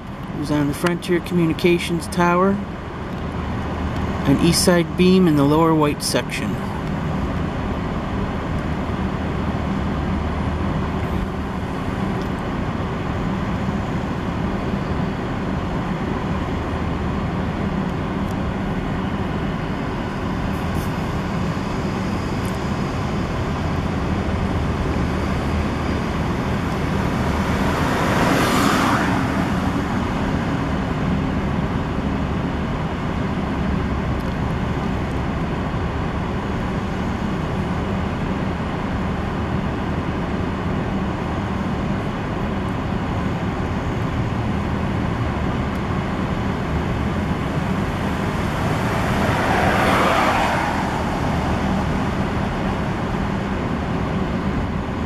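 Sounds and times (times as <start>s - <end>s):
street traffic rumble: 0.0s - 55.0s
vehicle passing by: 25.3s - 31.0s, 47.0s - 54.7s.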